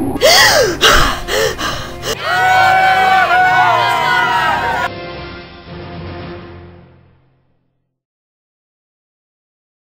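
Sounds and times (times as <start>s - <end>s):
person gasping: 0.2s - 2.2s.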